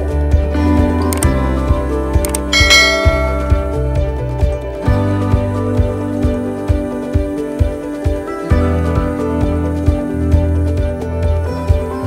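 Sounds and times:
instrumental music with steady beat: 0:01.1 - 0:05.8
sharp clicks: 0:02.2 - 0:03.2
bright bell chime: 0:02.5 - 0:04.2.

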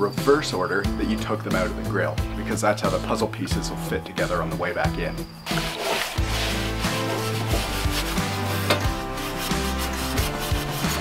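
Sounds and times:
background music with held notes: 0:00.0 - 0:11.0
scrubbing metal grill part: 0:05.5 - 0:11.0.

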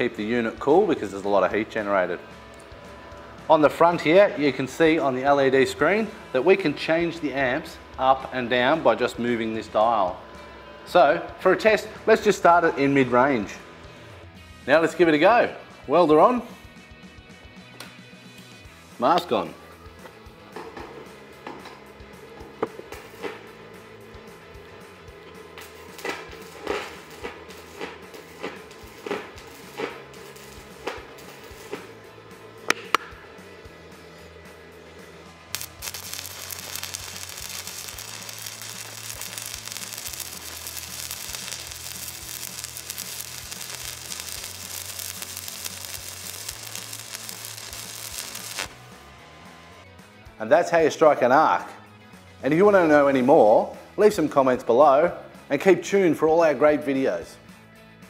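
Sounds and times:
arc welder crackling: 0:00.0 - 0:15.3, 0:19.1 - 0:49.2
background music: 0:00.0 - 0:58.0.

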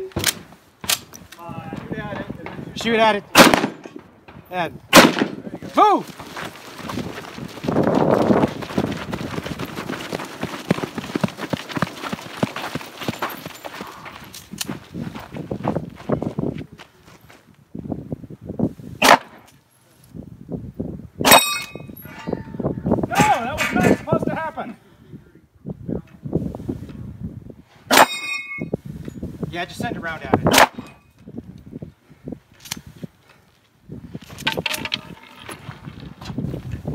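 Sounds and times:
loud pistol shots: 0:03.3 - 0:04.1, 0:04.9 - 0:05.6, 0:19.0 - 0:19.4, 0:30.5 - 0:30.9
running footsteps on dirt: 0:05.5 - 0:18.0, 0:33.0 - 0:36.9
steel target plate clanging: 0:21.3 - 0:22.6, 0:27.9 - 0:28.7, 0:34.5 - 0:35.6.

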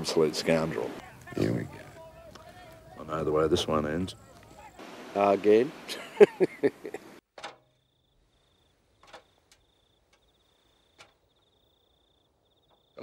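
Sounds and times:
cricket chirping: 0:07.5 - 0:13.0.

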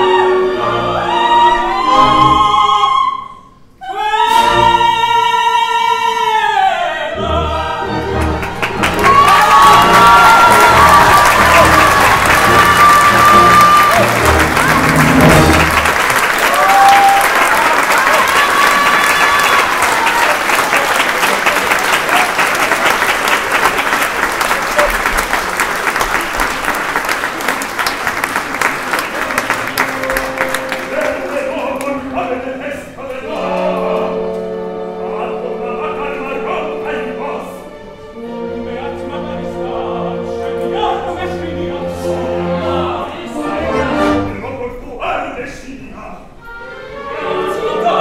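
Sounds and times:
orchestra playing: 0:00.0 - 0:03.3, 0:03.9 - 0:05.5, 0:07.1 - 0:45.4, 0:46.2 - 0:48.0
audience applauding: 0:08.0 - 0:32.2.

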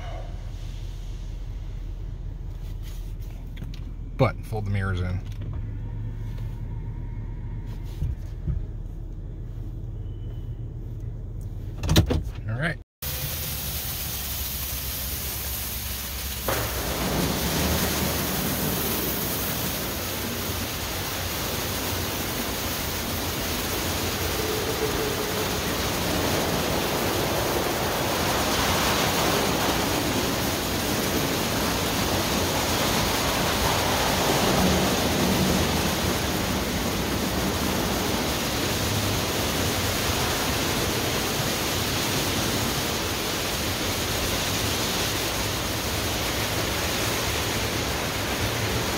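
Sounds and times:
car wash water spray and brushes: 0:00.0 - 0:11.8, 0:13.0 - 0:48.9
low rumble inside cab: 0:00.0 - 0:13.6.

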